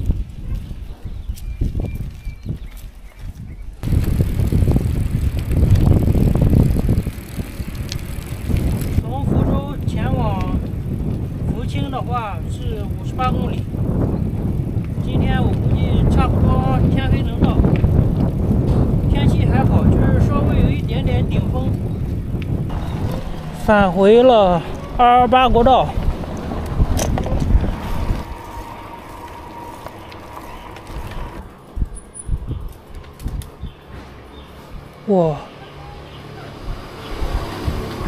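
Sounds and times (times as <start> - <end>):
wind rumbling on microphone: 0.0 - 35.0, 36.2 - 38.0.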